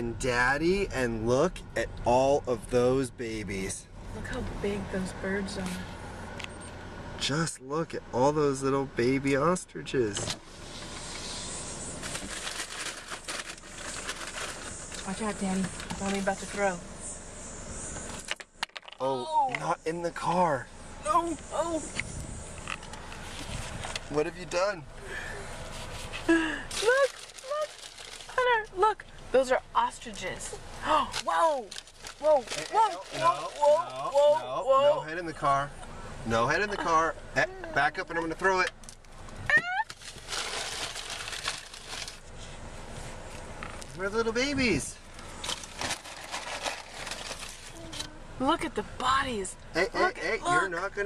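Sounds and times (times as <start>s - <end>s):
steady hiss of open air: 0.0s - 51.0s
rustling close to microphone: 10.2s - 16.7s, 21.9s - 24.2s, 25.5s - 28.5s, 38.8s - 44.0s, 45.2s - 48.1s
person squealing: 26.4s - 27.8s, 36.7s - 38.1s, 39.5s - 39.9s.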